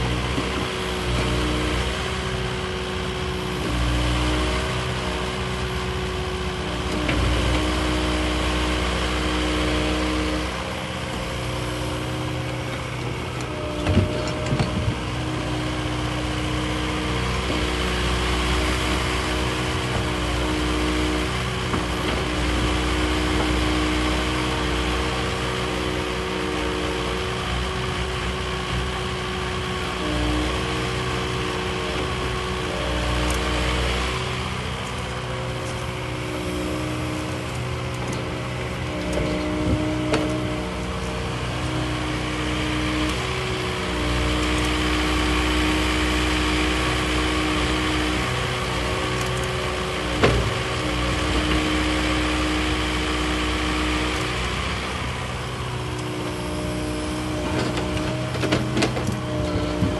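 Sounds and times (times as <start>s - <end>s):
excavator diesel engine running: 0.0s - 59.9s.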